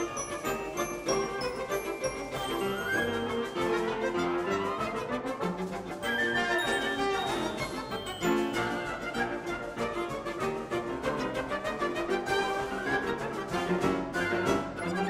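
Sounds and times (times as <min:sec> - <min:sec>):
orchestral music with brass and strings: 0:00.0 - 0:15.0.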